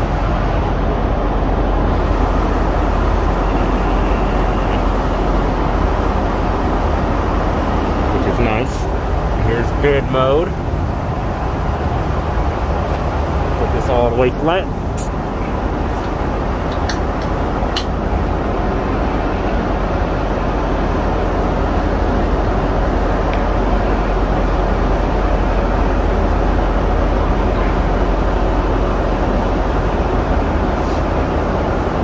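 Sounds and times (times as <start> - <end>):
airplane cabin drone: 0.0 - 32.0.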